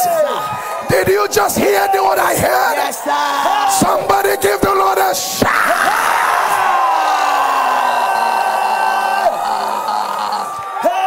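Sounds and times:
people shouting and whooping: 0:05.2 - 0:11.0.

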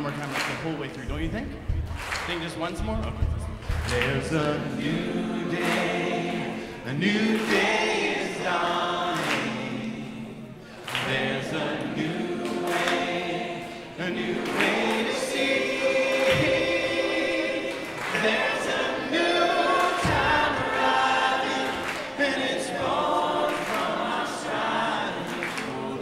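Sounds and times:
group singing gospel song: 0:03.2 - 0:26.0.

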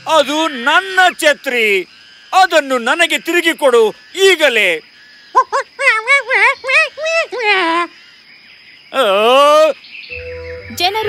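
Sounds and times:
cartoon monkey calls: 0:05.3 - 0:08.0.

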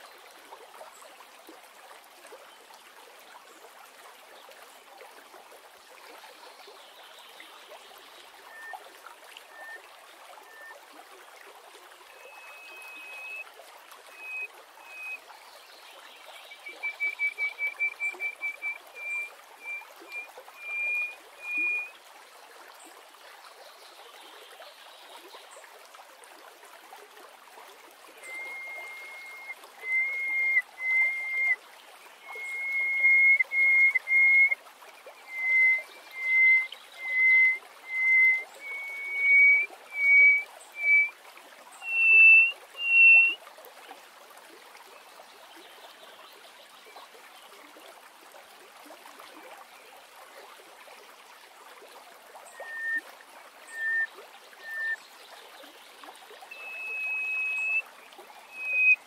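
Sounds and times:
bird singing piping whistles: 0:08.5 - 0:08.8, 0:09.5 - 0:09.8, 0:10.5 - 0:10.7, 0:12.2 - 0:13.4, 0:14.1 - 0:15.2, 0:16.5 - 0:21.9, 0:28.2 - 0:31.6, 0:32.2 - 0:34.6, 0:35.2 - 0:41.1, 0:41.8 - 0:43.4, 0:52.6 - 0:53.0, 0:53.7 - 0:55.0, 0:56.5 - 0:57.8, 0:58.4 - 0:59.0.

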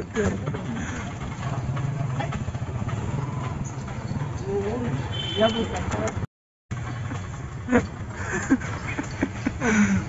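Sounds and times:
auto-rickshaws in traffic: 0:00.0 - 0:10.0
motorcycle engine running: 0:00.0 - 0:10.0.

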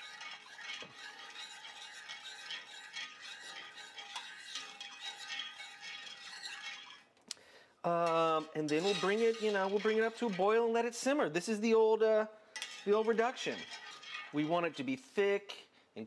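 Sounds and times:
spoon scraping pot: 0:00.0 - 0:07.2, 0:08.0 - 0:11.2, 0:12.6 - 0:15.0
spoon stirring liquid in pot: 0:00.0 - 0:07.2, 0:07.9 - 0:11.2, 0:12.6 - 0:15.0.

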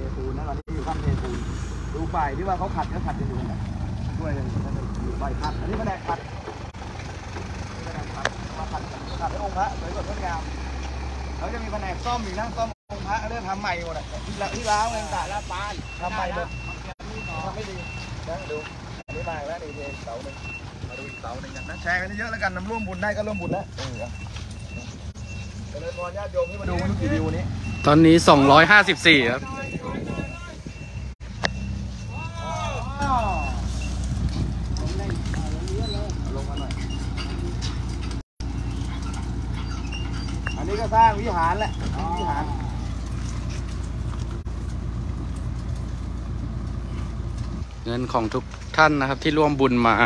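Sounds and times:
truck engine rumble: 0:00.0 - 0:50.0
reversing alarm beeps: 0:15.4 - 0:32.2, 0:33.2 - 0:34.0.

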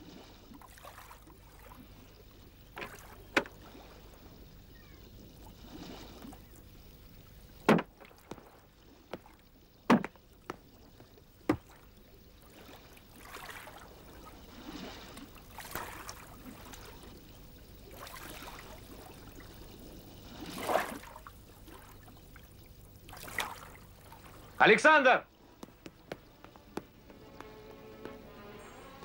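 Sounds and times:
oars swishing through water: 0:00.0 - 0:29.0
crates thudding into wooden boat: 0:07.6 - 0:08.1, 0:09.8 - 0:10.6, 0:11.5 - 0:11.7.

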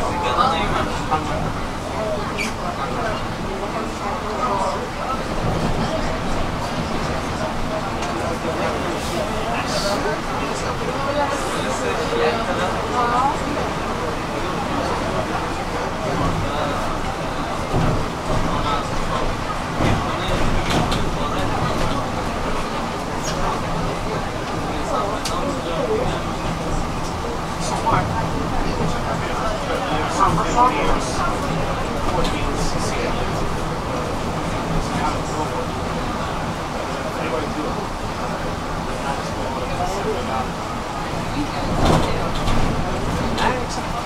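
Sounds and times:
bus engine and tyre noise: 0:00.0 - 0:44.0.

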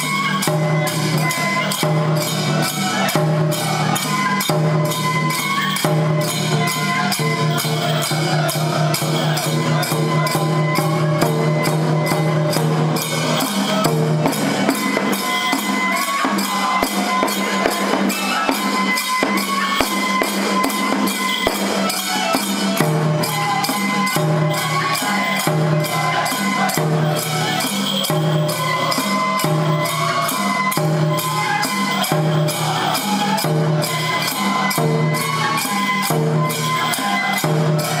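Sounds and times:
jingling metal percussion: 0:00.0 - 0:38.0
taiko drum beat: 0:05.8 - 0:36.8.

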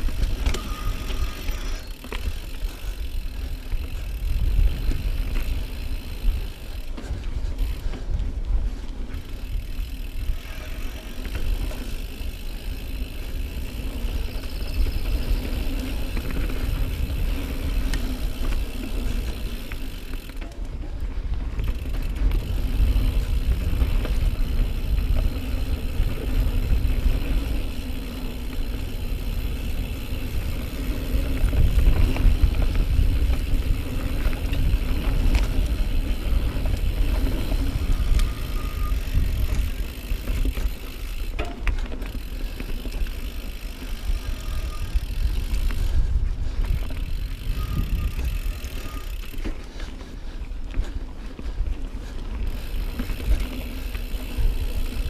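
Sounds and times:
mountain bike rattling over trail: 0:00.0 - 0:55.0.

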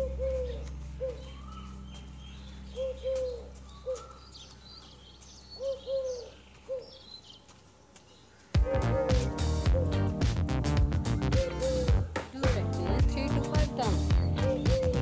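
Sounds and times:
dove cooing: 0:00.0 - 0:02.0, 0:02.7 - 0:04.4, 0:05.6 - 0:07.0, 0:08.6 - 0:10.1, 0:11.3 - 0:12.2, 0:13.2 - 0:15.0
steady low hum: 0:00.0 - 0:05.2
small birds chirping: 0:00.0 - 0:15.0
loud music: 0:08.6 - 0:15.0.

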